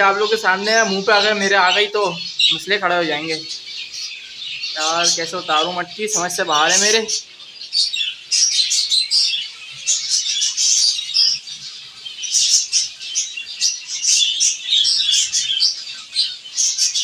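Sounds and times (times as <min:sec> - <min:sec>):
finches chirping: 0:00.0 - 0:17.0.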